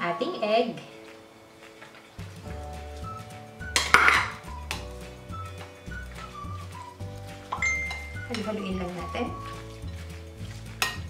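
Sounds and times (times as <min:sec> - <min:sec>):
background music with bass line: 0:02.2 - 0:11.0
spoon scraping a glass bowl: 0:07.5 - 0:11.0.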